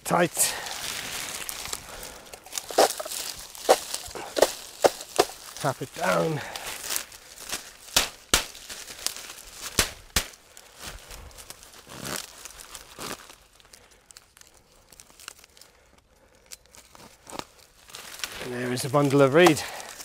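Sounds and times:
dry reeds rustling and crackling: 0:00.0 - 0:20.0
reed stems snapping: 0:00.6 - 0:15.8, 0:16.4 - 0:20.0.

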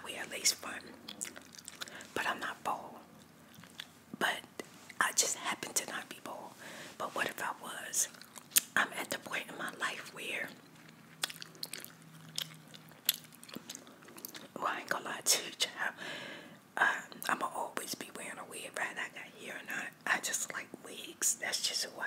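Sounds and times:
wet chewing: 0:00.9 - 0:02.1, 0:03.1 - 0:04.0, 0:08.1 - 0:08.8, 0:10.5 - 0:14.6
lip and tongue clicks: 0:08.1 - 0:08.8, 0:10.7 - 0:14.5.

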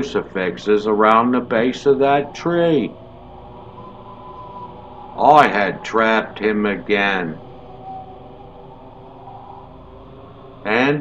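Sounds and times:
faint held tones: 0:00.0 - 0:10.7
background hum: 0:00.0 - 0:11.0.

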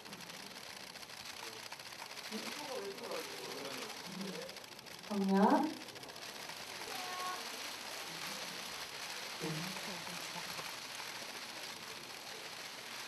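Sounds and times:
faint voices murmuring: 0:00.0 - 0:13.0.

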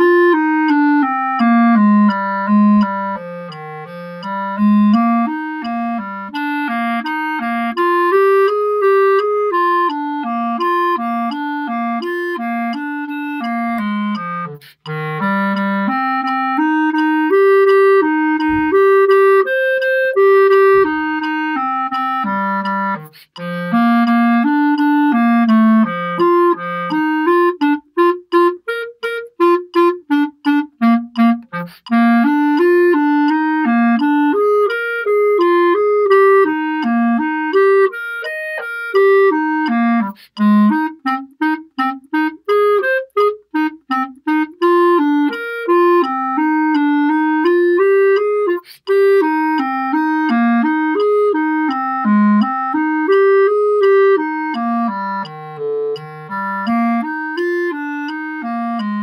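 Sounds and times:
solo clarinet playing: 0:00.0 - 0:59.0.

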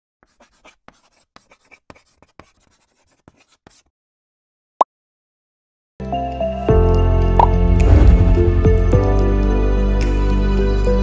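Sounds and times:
pen scratching on paper: 0:00.2 - 0:03.9.

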